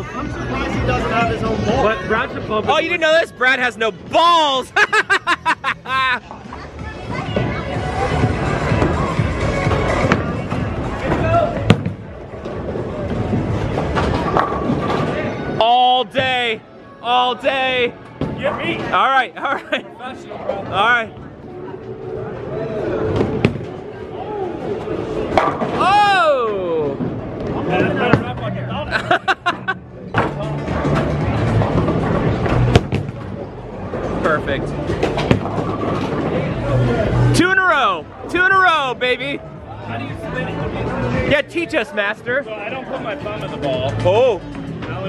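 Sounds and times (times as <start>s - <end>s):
background music: 0.0s - 45.0s.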